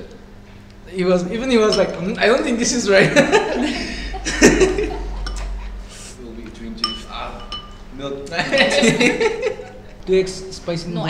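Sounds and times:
spoon clinking on ceramic bowl: 1.6 - 2.2, 5.2 - 5.5, 6.8 - 7.9.

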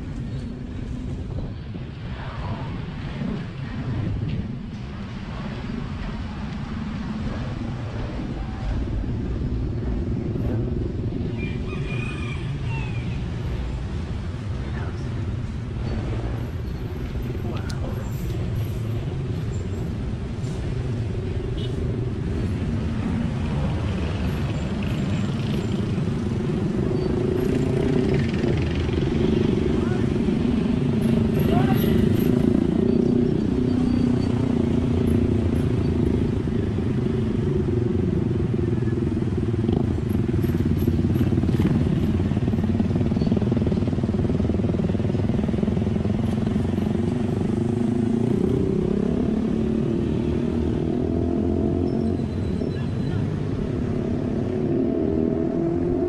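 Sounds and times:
road and wind noise: 0.0 - 56.0
small motorcycle engines: 22.9 - 56.0.

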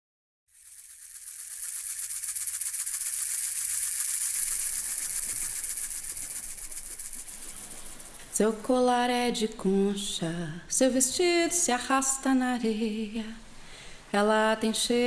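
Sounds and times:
shakers rattling in rhythm: 0.5 - 8.7.

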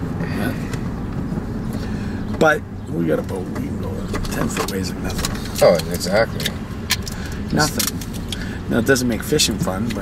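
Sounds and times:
car engine hum from cabin: 0.0 - 10.0.

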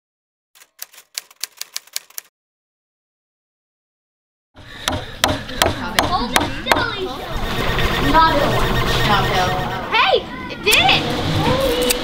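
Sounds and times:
typewriter keys striking: 0.6 - 2.3.

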